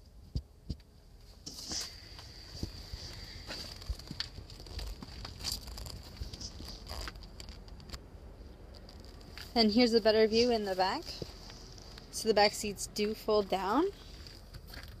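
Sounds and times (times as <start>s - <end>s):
low rumble: 1.9s - 12.9s.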